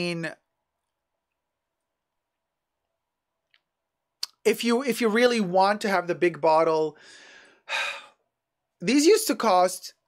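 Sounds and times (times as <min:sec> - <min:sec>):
man speaking: 0:00.0 - 0:00.5, 0:04.2 - 0:07.0, 0:08.8 - 0:10.0
man breathing: 0:07.0 - 0:08.3.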